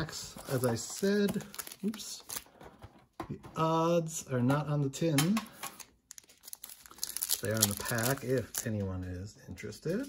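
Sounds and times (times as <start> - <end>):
foil wrapper crinkling: 6.1 - 8.9.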